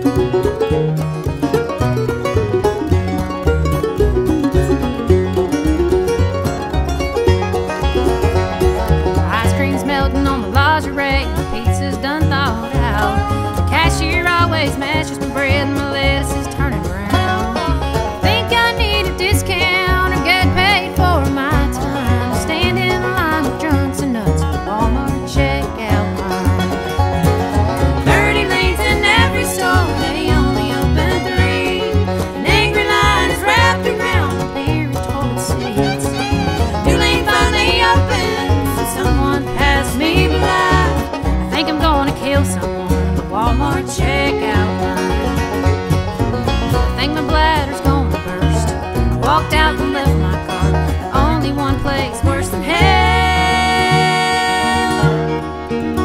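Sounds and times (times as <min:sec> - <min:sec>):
string band playing: 0:00.0 - 0:56.0.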